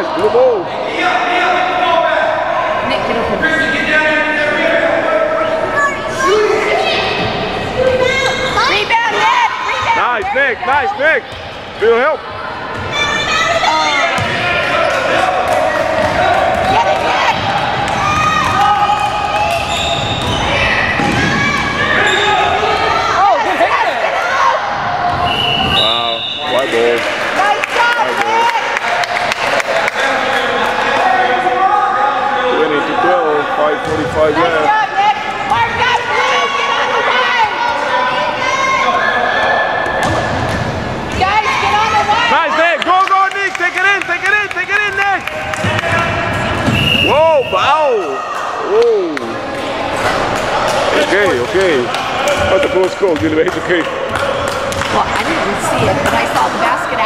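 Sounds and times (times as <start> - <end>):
echoing voices in gym: 0.0 - 57.0.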